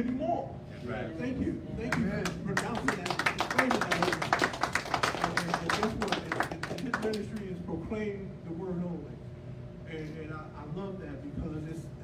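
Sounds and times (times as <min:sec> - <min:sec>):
people clapping: 0:01.8 - 0:07.5.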